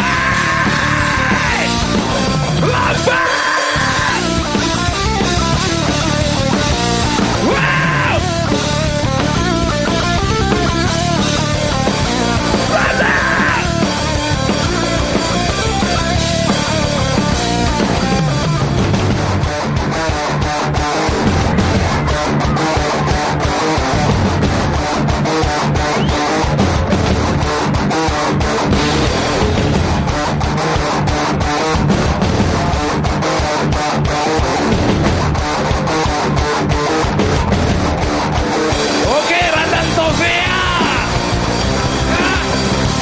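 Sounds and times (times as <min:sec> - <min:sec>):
bass guitar: 0:00.0 - 0:43.0
drum kit driving beat: 0:00.0 - 0:43.0
electric guitar: 0:00.0 - 0:43.0.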